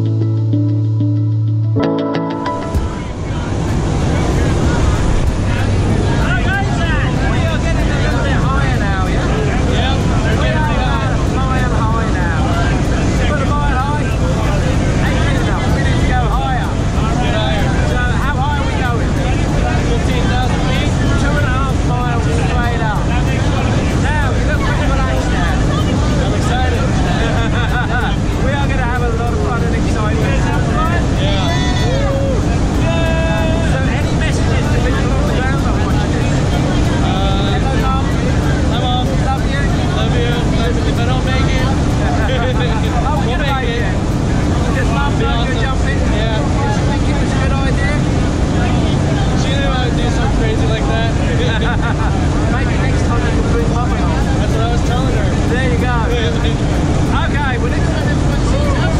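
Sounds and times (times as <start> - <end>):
people talking and calling out: 1.7 - 58.9.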